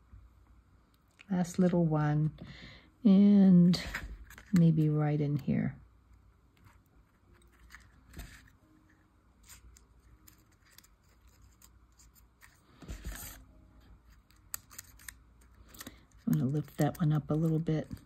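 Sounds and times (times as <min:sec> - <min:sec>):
paper rustling: 0:06.6 - 0:13.4.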